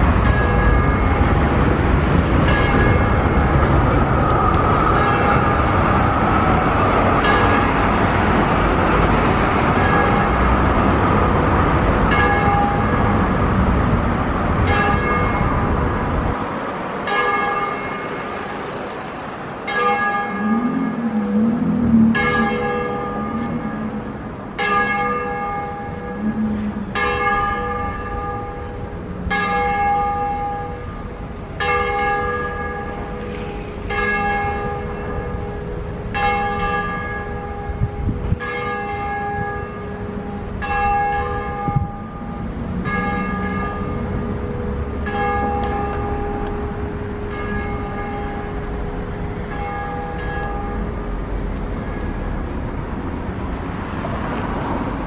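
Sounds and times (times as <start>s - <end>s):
church bell ringing: 0.0s - 1.7s, 2.4s - 3.7s, 5.0s - 5.8s, 7.2s - 7.8s, 9.7s - 10.4s, 12.0s - 13.2s, 14.7s - 15.8s, 17.0s - 18.4s, 19.6s - 51.3s.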